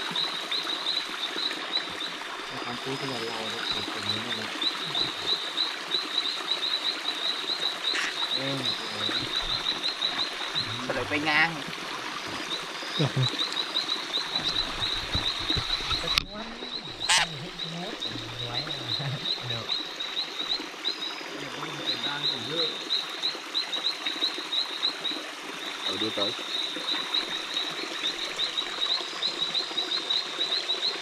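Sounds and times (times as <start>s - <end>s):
frogs chirping: 0.0s - 31.0s.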